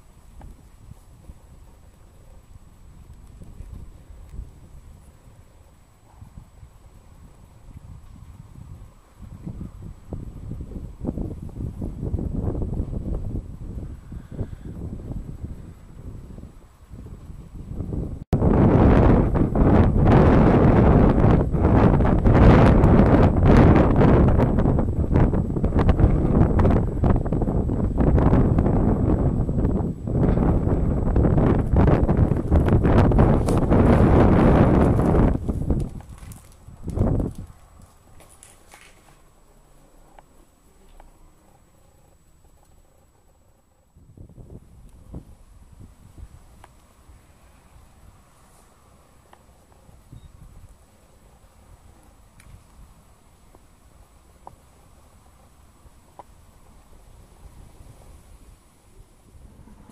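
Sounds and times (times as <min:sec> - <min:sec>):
wind buffeting microphone: 0:00.0 - 0:39.3, 0:40.9 - 0:59.9.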